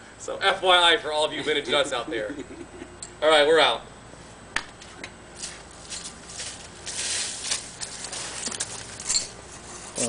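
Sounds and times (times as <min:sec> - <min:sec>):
footsteps on concrete and dry leaves: 0:04.8 - 0:10.0.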